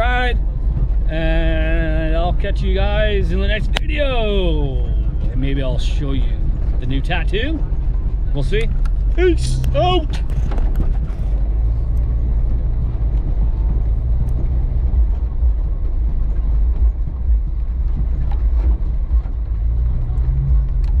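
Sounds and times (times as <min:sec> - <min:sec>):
car engine and road drone: 0:00.0 - 0:21.0.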